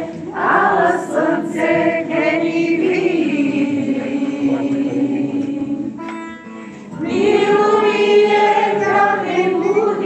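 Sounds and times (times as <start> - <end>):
choir singing without instruments: 0.0 - 6.2, 6.8 - 10.0.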